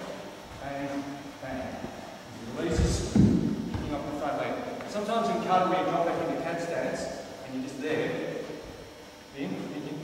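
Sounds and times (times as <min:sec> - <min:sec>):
indistinct talking echoing in hall: 0:00.0 - 0:10.0
loud dull thump: 0:02.7 - 0:04.0.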